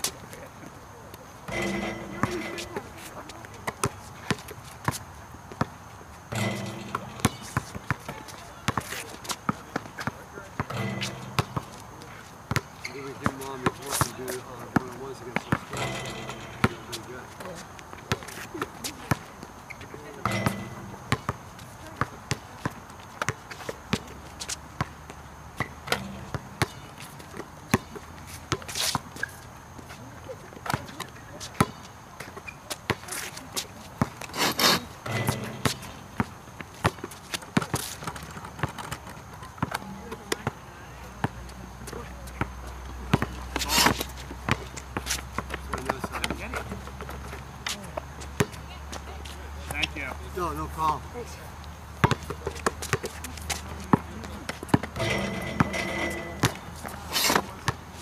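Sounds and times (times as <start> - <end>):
basketball bouncing on asphalt: 1.5 - 14.2, 20.2 - 29.1, 31.6 - 40.6, 41.2 - 49.2, 52.0 - 57.8.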